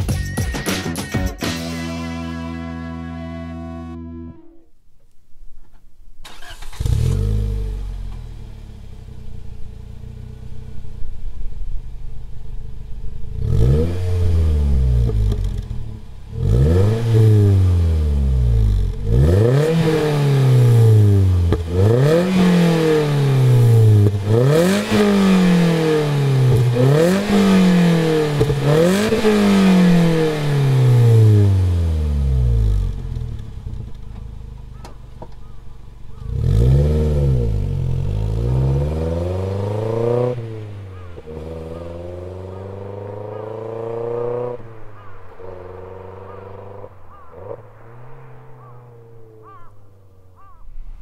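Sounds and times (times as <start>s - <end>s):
car engine starting and idling: 1.5s - 51.0s
car engine revving: 6.2s - 51.0s.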